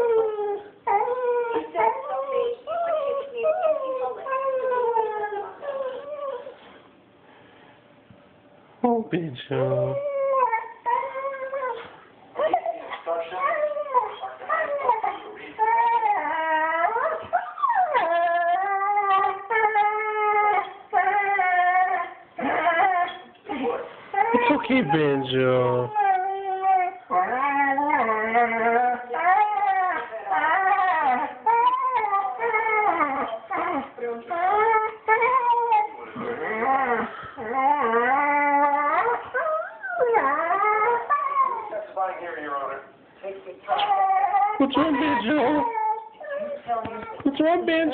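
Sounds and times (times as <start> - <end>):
dog whining and howling: 0.0 - 6.8, 9.6 - 42.1, 43.7 - 47.9.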